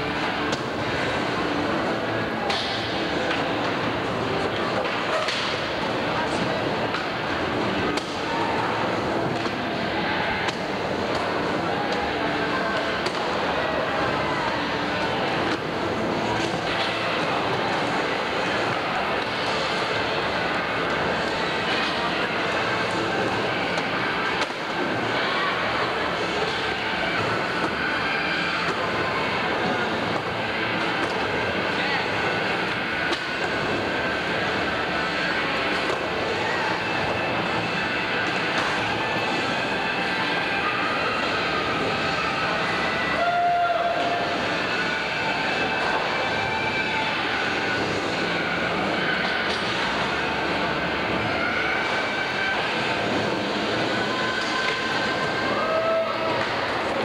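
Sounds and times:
crowd voices echoing: 0.0 - 57.0.

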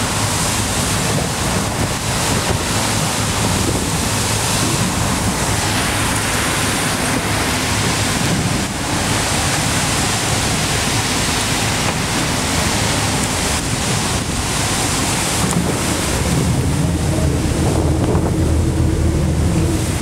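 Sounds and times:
choppy sea washing against wall: 0.0 - 20.0
wind buffeting microphone: 0.0 - 20.0.

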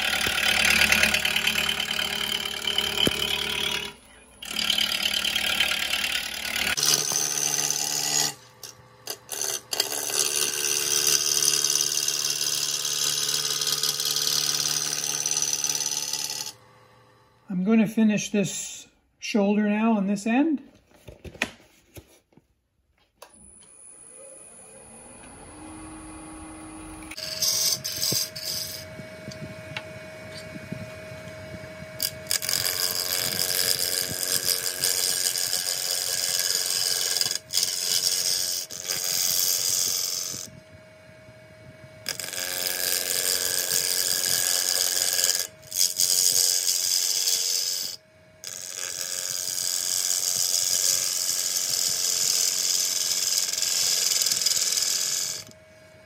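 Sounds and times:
gouge cutting wood: 0.0 - 16.6, 27.0 - 30.5, 31.8 - 40.6, 42.0 - 55.5
wood lathe hum: 0.0 - 17.6, 23.2 - 56.0.

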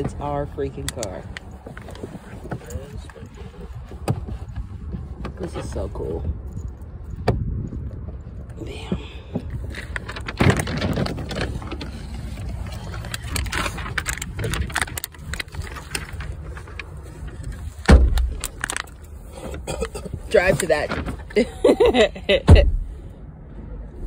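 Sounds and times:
rustling and clicks in a car: 0.0 - 24.0
heavy thump: 22.4 - 22.9.

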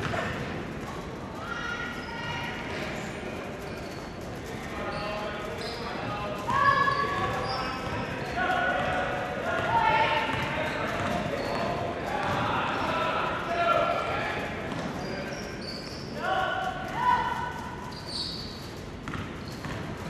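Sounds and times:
sneaker squeaks: 0.0 - 8.4, 9.5 - 12.4, 14.6 - 16.4, 17.0 - 20.0.

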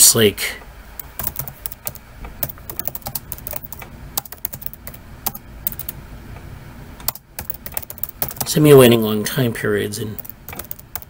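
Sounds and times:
typing on computer keyboard: 1.0 - 6.0, 7.0 - 8.6, 10.2 - 11.0.

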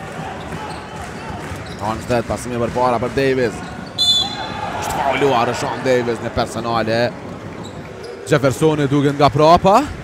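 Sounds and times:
man speaking: 4.8 - 7.1.

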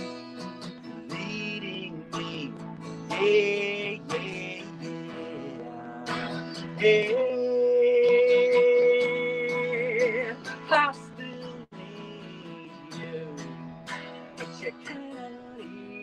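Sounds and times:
man singing: 0.0 - 16.0
strummed acoustic guitar: 0.0 - 16.0.

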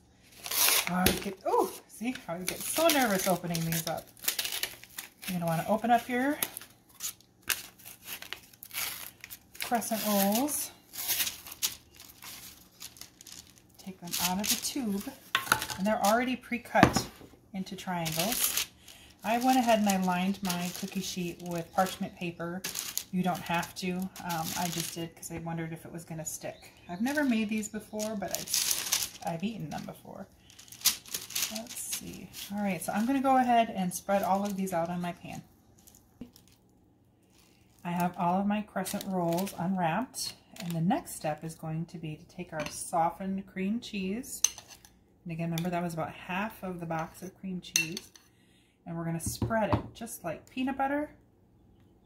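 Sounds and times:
paper and foil wrapper crinkling: 0.2 - 16.5, 17.6 - 25.3, 26.5 - 39.8
woman's voice: 0.9 - 4.0, 5.3 - 6.5, 9.6 - 10.8, 13.8 - 18.5, 19.2 - 28.6, 29.2 - 30.3, 31.5 - 35.4, 37.8 - 44.4, 45.3 - 48.0, 48.9 - 51.2.

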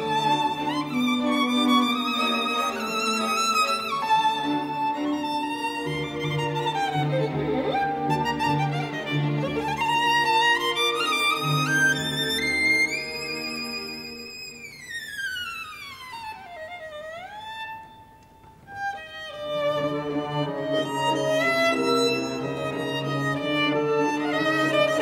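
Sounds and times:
solo violin glissando: 0.0 - 25.0.

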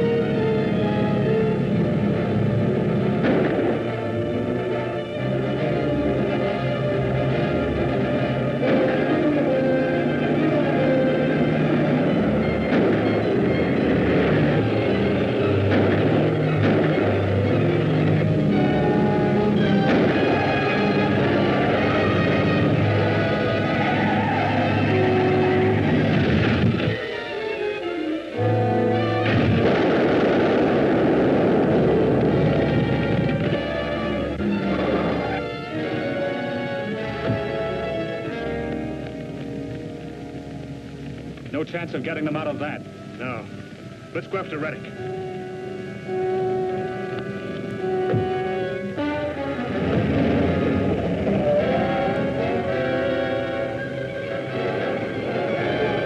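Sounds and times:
orchestral chase music: 0.0 - 56.0.

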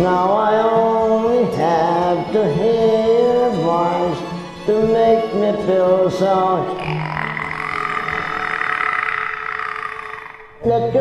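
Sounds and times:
man singing long karaoke note: 0.0 - 8.4, 10.6 - 11.0
karaoke backing track: 0.0 - 11.0.

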